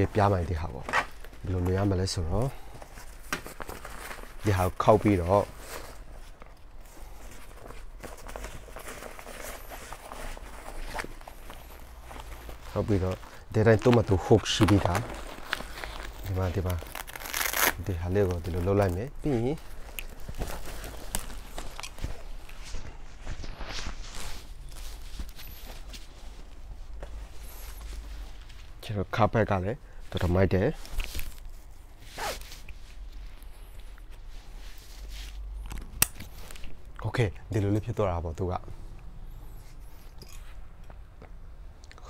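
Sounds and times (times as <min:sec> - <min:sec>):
fabric rustling: 0:00.0 - 0:35.6.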